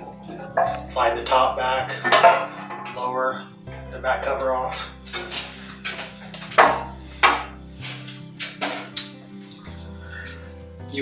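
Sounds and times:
guitar music: 0.0 - 11.0
metallic knocks and clatters: 1.9 - 3.1, 5.0 - 9.6.

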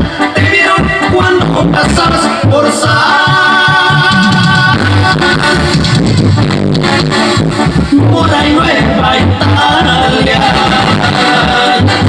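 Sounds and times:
loud dance music with singing: 0.1 - 6.1, 7.9 - 12.0.

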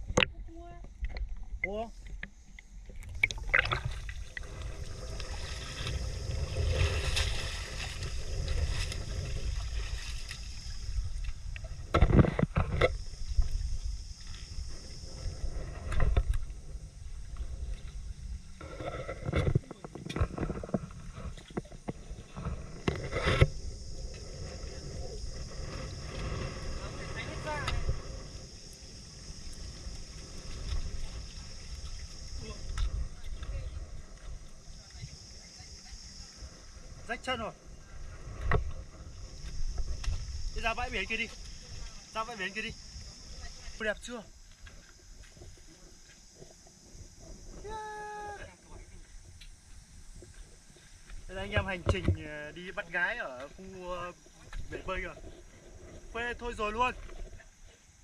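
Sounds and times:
low rumble and hiss: 0.0 - 58.0
sea water lapping on rocks: 0.9 - 16.6.

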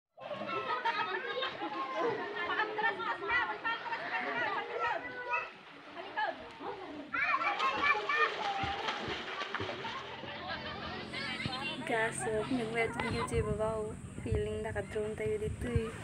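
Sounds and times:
voices talking and calling out: 0.2 - 16.0.

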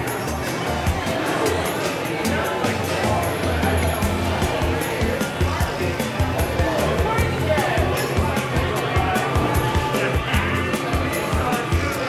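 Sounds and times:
background music with bass line: 0.0 - 12.0
crowd chatter: 0.0 - 12.0.

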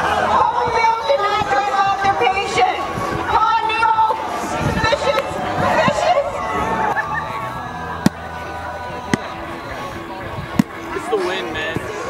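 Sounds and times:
outdoor crowd chatter: 0.0 - 12.0
ball smacks: 8.0 - 8.3, 10.6 - 10.8.

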